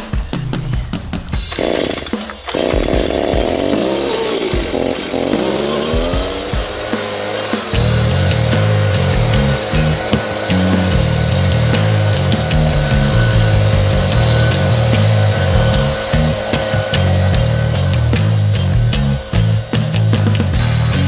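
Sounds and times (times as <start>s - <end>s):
background music with bassline: 0.0s - 21.0s
leaf blower engine running: 1.4s - 21.0s.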